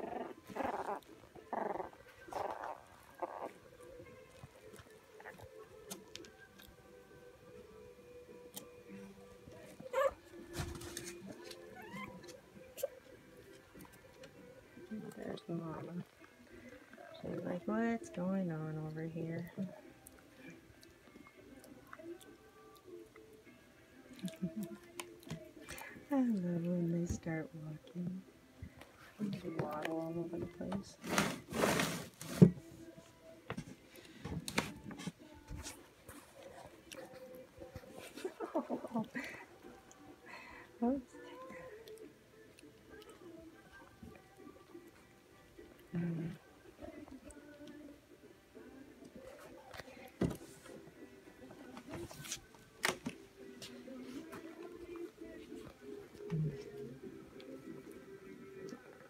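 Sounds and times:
puppies squeaking and whining: 0:00.0 - 0:03.6, 0:09.8 - 0:13.0
puppy yelping: 0:09.9 - 0:10.2, 0:11.7 - 0:13.0.

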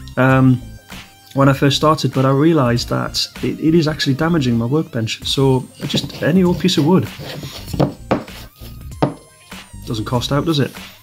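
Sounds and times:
faint background music: 0:00.0 - 0:11.0
wood block knocking on a mat: 0:07.7 - 0:08.4, 0:09.0 - 0:09.3.

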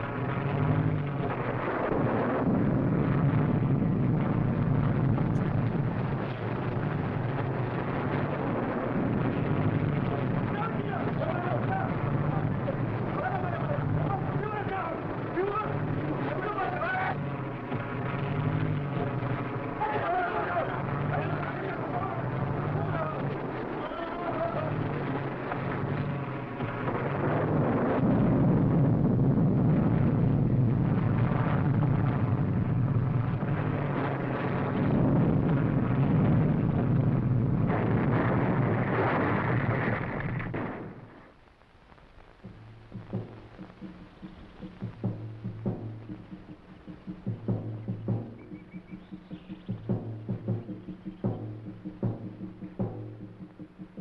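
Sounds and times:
rushing crash noise: 0:00.0 - 0:41.4, 0:42.4 - 0:54.0
low regular pulse: 0:00.0 - 0:54.0
plane engine and storm noise: 0:00.0 - 0:54.0.

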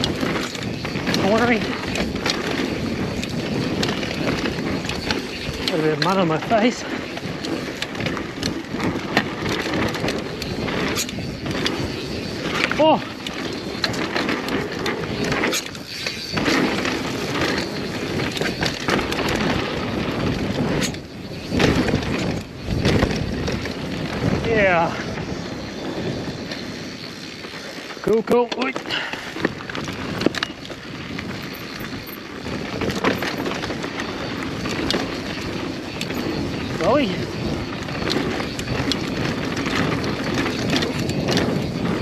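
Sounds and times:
bike clattering over rough ground: 0:00.0 - 0:42.0
tyre and wind rush: 0:00.0 - 0:42.0
brake squeals: 0:09.6 - 0:23.4, 0:24.5 - 0:42.0.

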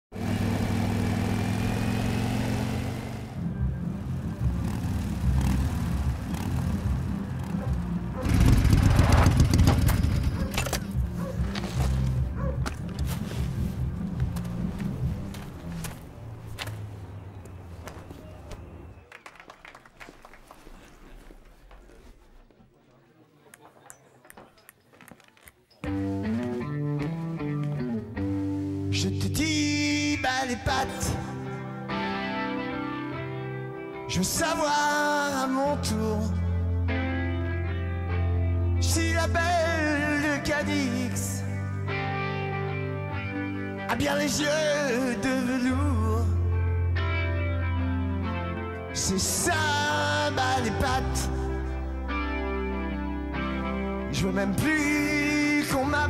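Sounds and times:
motorcycle engine running: 0:00.2 - 0:11.5
electric guitar riff: 0:25.8 - 0:29.3, 0:46.4 - 0:54.6.

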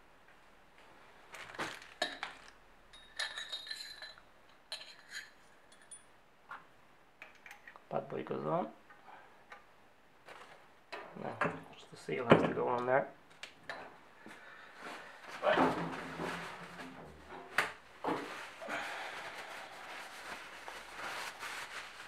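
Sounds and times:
metal parts clinking on workbench: 0:02.0 - 0:06.1.

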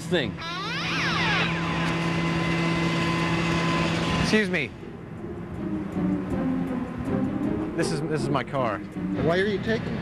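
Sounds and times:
truck engine running: 0:00.0 - 0:10.0.

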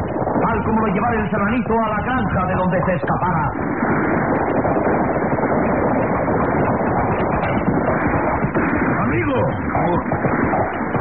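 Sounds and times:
galloping horse hoofbeats: 0:03.6 - 0:11.0.

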